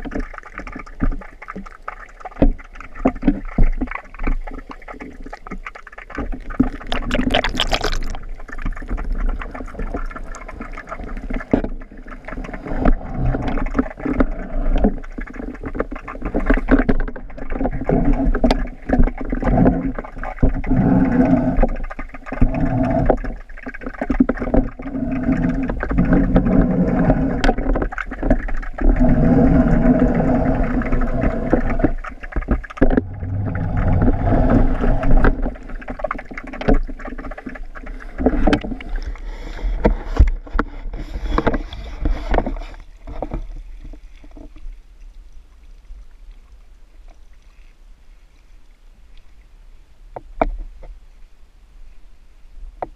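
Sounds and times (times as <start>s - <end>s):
muffled underwater water movement: 0.0s - 52.9s.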